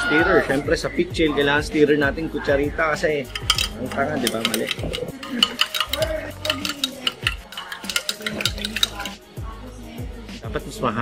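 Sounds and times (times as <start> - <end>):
spoon clinking against glass: 3.3 - 9.2.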